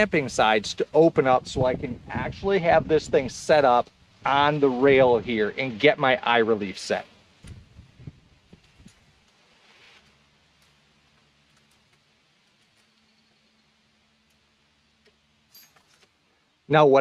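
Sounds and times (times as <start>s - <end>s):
faint steady hum: 0.0s - 17.0s
small metal parts clicking: 15.0s - 16.1s.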